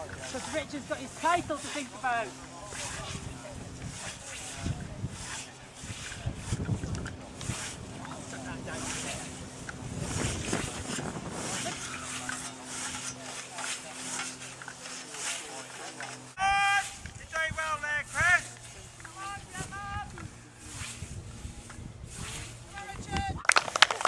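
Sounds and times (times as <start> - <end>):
scythe swishing through grass: 0.0 - 23.2
people shouting loudly: 16.4 - 18.5.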